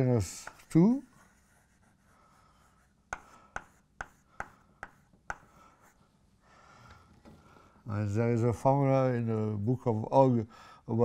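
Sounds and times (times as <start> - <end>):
chalk scratching on blackboard: 0.3 - 6.0.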